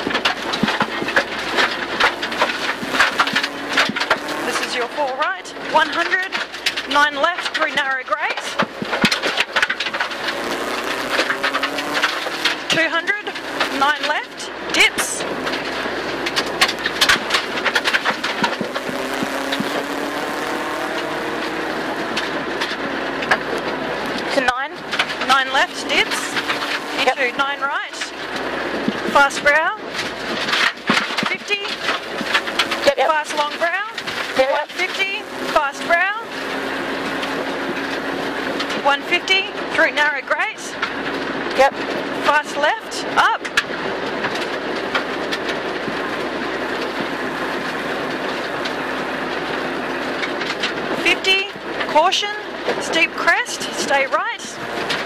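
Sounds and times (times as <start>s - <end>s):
car engine running hard: 0.0s - 55.0s
gravel clattering against car underbody: 0.0s - 55.0s
tyre noise: 0.0s - 55.0s.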